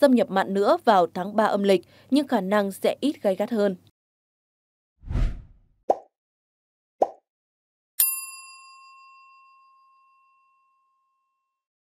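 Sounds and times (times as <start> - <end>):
bright bell ding: 8.0 - 11.0.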